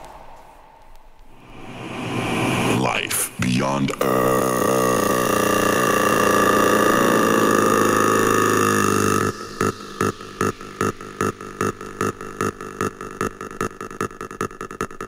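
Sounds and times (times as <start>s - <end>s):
distorted synth tone: 1.3s - 15.0s.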